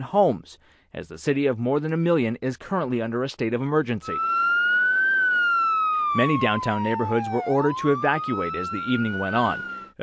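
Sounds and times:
emergency vehicle siren wailing: 0:04.0 - 0:10.0.

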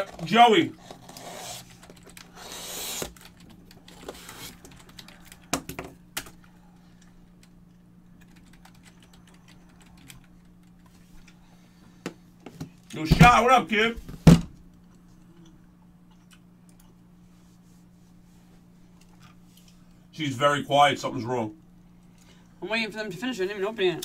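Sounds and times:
low electrical hum: 0:00.0 - 0:24.0
keyboard typing clicks: 0:08.2 - 0:10.7.

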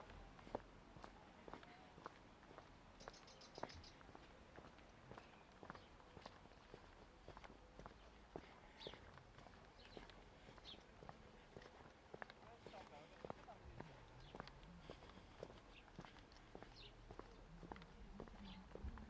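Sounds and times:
footsteps on stone path: 0:00.0 - 0:19.0.

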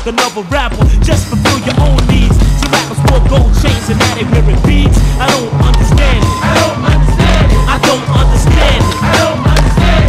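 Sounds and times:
hip-hop music with steady beat: 0:00.0 - 0:10.0
skateboard popping and landing: 0:01.4 - 0:04.5.

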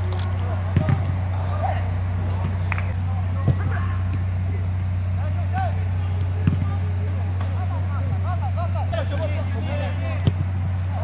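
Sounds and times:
players shouting: 0:00.0 - 0:11.0
steady low hum: 0:00.0 - 0:11.0
ball being kicked: 0:00.7 - 0:01.2, 0:06.3 - 0:06.8.

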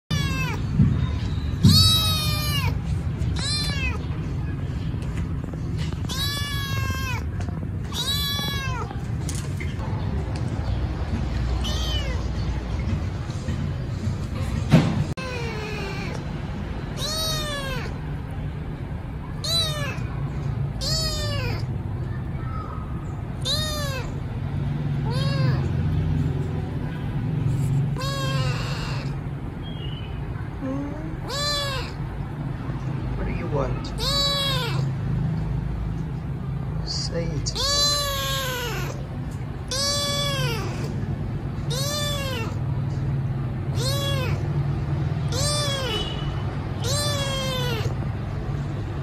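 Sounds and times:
kitten meowing: 0:00.1 - 0:00.8, 0:01.5 - 0:04.2, 0:05.9 - 0:09.0, 0:11.6 - 0:12.3, 0:15.2 - 0:16.2, 0:17.0 - 0:18.0, 0:19.4 - 0:20.1, 0:20.7 - 0:21.7, 0:23.4 - 0:24.2, 0:25.0 - 0:25.9, 0:27.9 - 0:29.2, 0:31.1 - 0:32.0, 0:33.9 - 0:35.0, 0:37.5 - 0:42.6, 0:43.7 - 0:44.5, 0:45.2 - 0:48.0.

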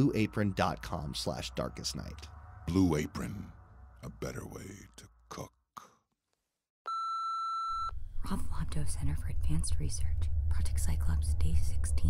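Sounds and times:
low hum: 0:07.8 - 0:12.0.

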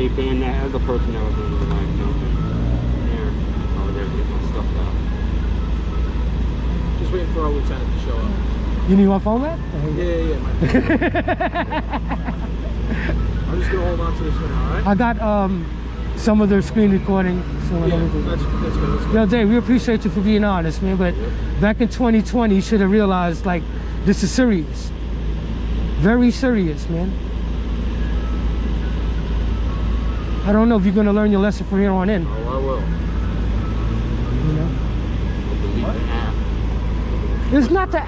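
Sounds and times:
low hum of street traffic: 0:00.0 - 0:38.0
man laughing: 0:10.6 - 0:13.8.

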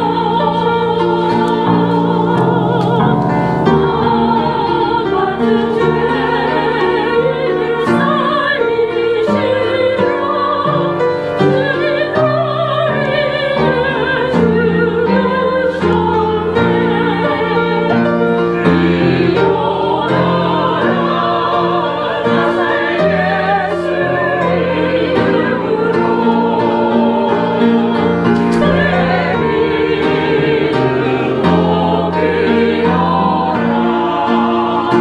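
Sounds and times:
choir singing: 0:00.0 - 0:35.0
piano accompaniment: 0:00.0 - 0:35.0.

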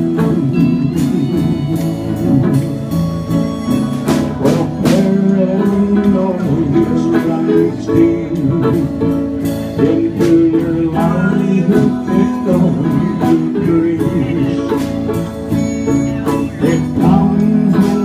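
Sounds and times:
drums: 0:00.0 - 0:18.0
electric bass: 0:00.0 - 0:18.0
electric guitar: 0:00.0 - 0:18.0.

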